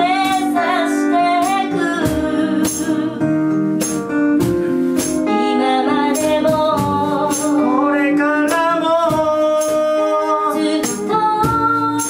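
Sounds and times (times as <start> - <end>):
woman singing slow melody: 0.0 - 3.6, 5.2 - 12.0
acoustic guitar: 0.0 - 12.0
keyboard: 0.0 - 12.0.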